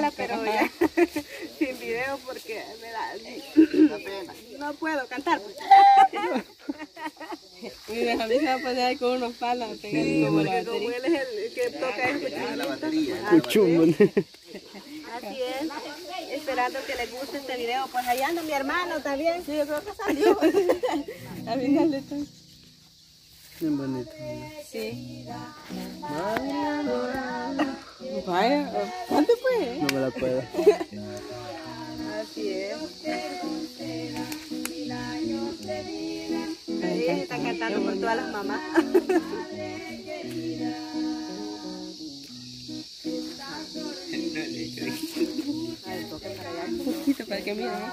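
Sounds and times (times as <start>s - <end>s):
person singing unaccompanied: 0.0s - 6.7s, 7.9s - 14.0s, 23.5s - 47.9s
woman laughing and talking: 0.0s - 22.3s, 26.8s - 33.6s, 36.9s - 40.0s, 44.2s - 47.9s
high insect buzz: 0.0s - 47.9s
voices: 0.0s - 47.9s.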